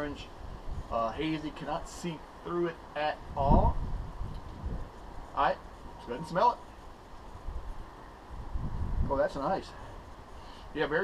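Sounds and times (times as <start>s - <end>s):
wind buffeting microphone: 0.0s - 2.0s, 3.0s - 6.2s, 6.8s - 11.0s.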